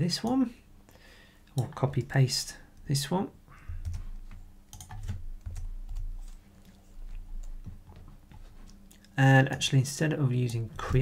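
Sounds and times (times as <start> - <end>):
keyboard keys clicking: 3.8 - 6.4.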